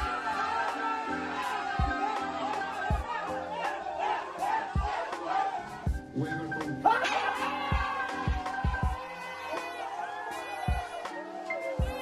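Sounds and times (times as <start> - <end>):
background music with thumping beat: 0.0 - 12.0
people shouting and cheering: 0.0 - 12.0.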